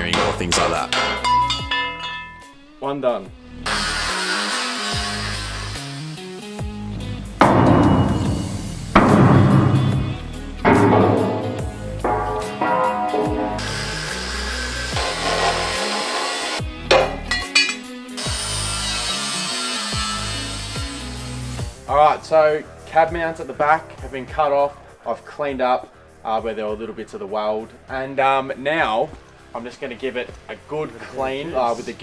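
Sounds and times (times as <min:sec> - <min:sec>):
background music: 0:00.0 - 0:32.0
angle grinder cutting steel: 0:03.6 - 0:06.2, 0:13.6 - 0:16.7, 0:17.3 - 0:21.6.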